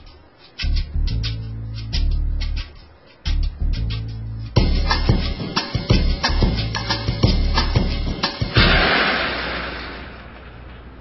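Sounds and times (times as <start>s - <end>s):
beat-driven music: 0.0s - 9.2s
escalator noisy rush: 8.0s - 11.0s.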